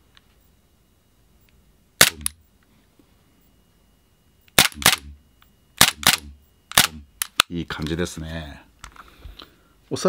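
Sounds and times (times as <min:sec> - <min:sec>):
airsoft pistol shots: 0:02.0 - 0:02.4, 0:04.6 - 0:05.1, 0:05.8 - 0:07.4.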